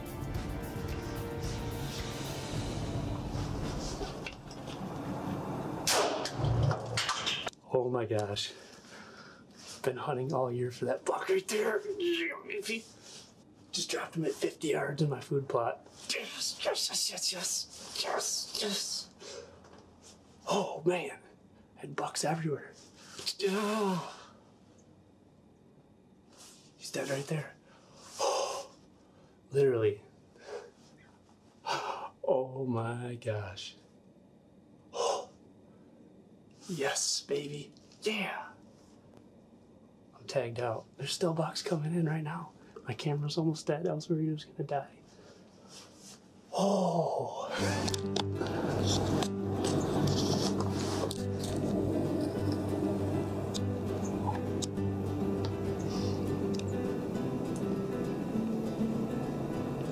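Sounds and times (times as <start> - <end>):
background music: 0.0 - 4.3, 47.6 - 59.9
man breathing heavily: 47.5 - 48.7, 55.8 - 56.4.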